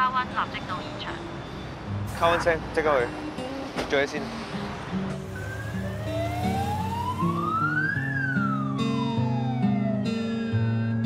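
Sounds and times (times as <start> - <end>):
background music: 2.0 - 11.0
police siren wailing: 5.3 - 11.0.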